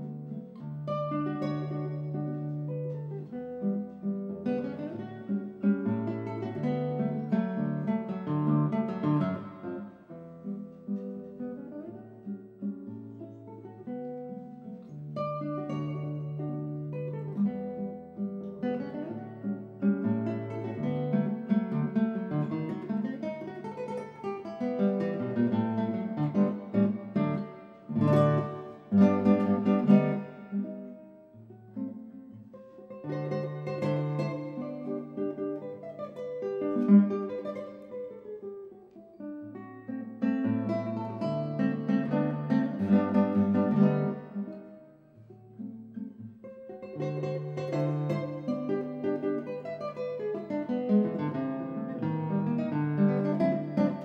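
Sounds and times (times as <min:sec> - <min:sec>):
classical guitar playing: 0:00.0 - 0:54.0.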